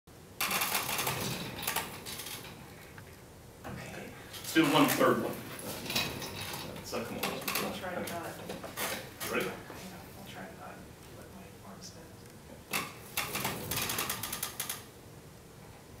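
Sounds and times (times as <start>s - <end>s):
office chair casters rolling: 0.4s - 2.9s, 4.3s - 9.6s, 12.7s - 14.9s.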